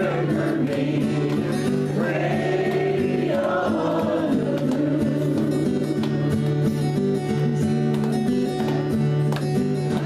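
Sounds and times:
group of voices singing: 0:00.0 - 0:06.1
strummed acoustic guitar: 0:00.0 - 0:10.0.

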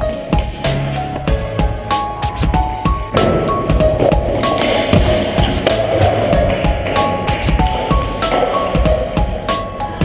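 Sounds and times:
music with steady drum beat: 0:00.0 - 0:10.0
skateboard wheels rolling: 0:03.0 - 0:10.0.

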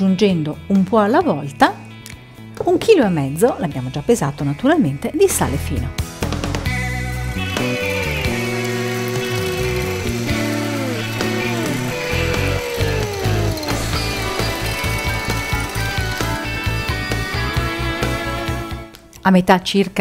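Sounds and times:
background music: 0:00.0 - 0:20.0
electric hand mixer whine: 0:07.2 - 0:18.8.

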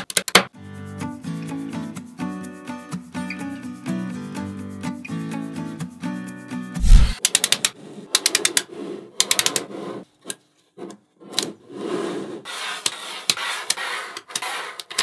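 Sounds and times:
gritty rubbing on tabletop: 0:11.5 - 0:14.9.

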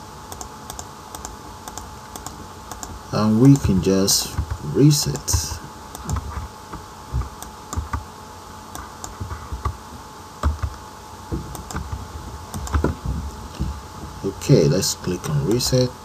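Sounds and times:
computer keyboard keystrokes: 0:00.3 - 0:03.6, 0:07.2 - 0:08.0, 0:10.4 - 0:10.8, 0:11.5 - 0:12.9.

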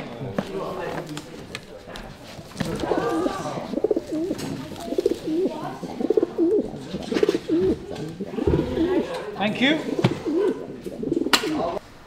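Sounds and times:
pigeons cooing: 0:02.8 - 0:11.8.

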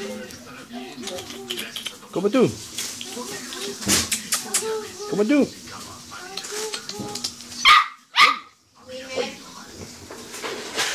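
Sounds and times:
small dog barking: 0:07.6 - 0:08.6.

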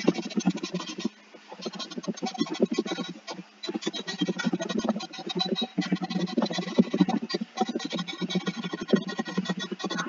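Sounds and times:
fast keyboard typing: 0:03.7 - 0:10.0.

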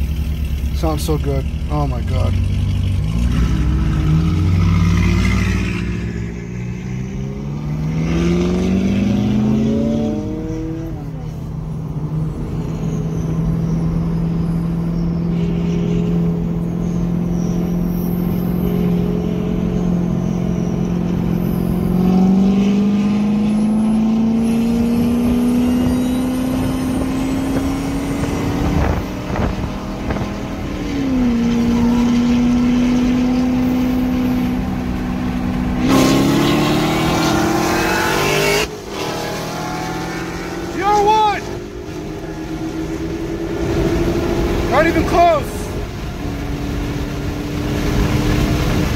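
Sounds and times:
car engine accelerating: 0:00.0 - 0:48.9.

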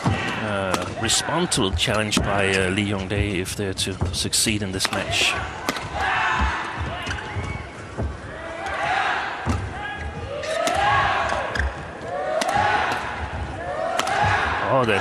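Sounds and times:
rackets striking shuttlecock: 0:04.8 - 0:06.1, 0:12.4 - 0:13.2, 0:13.9 - 0:14.5
feet thudding: 0:05.0 - 0:15.0.

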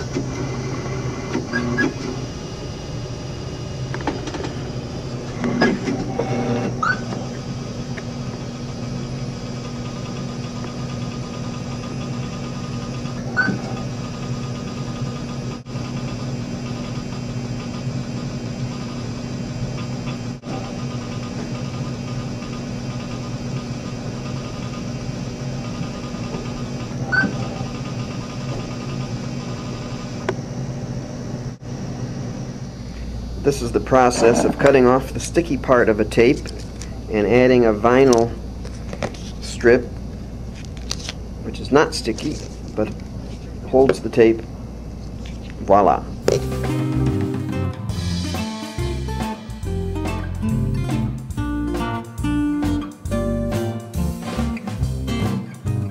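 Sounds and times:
computer equipment electrical hum: 0:00.0 - 0:48.0.

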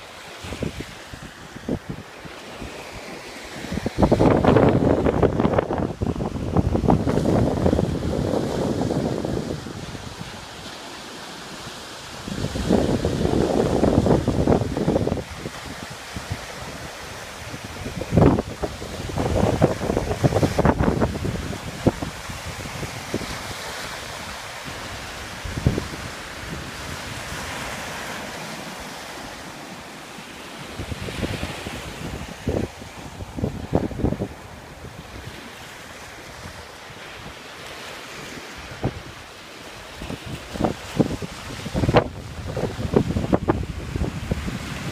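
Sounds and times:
wind buffeting microphone: 0:03.6 - 0:10.7, 0:12.1 - 0:27.8, 0:30.7 - 0:37.4, 0:38.3 - 0:39.2, 0:39.9 - 0:44.9
steady rushing noise: 0:16.6 - 0:23.2.

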